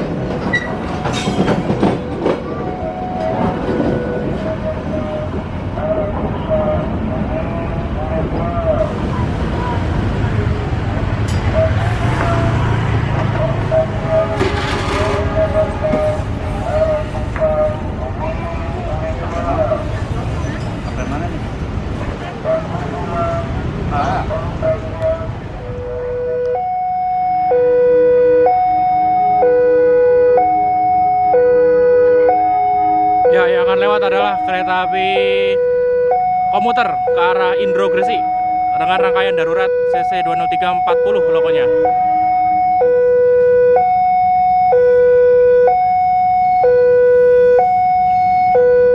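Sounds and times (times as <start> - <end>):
train wheels rumbling: 0.0 - 26.1
wavering pitched tone: 25.6 - 48.9.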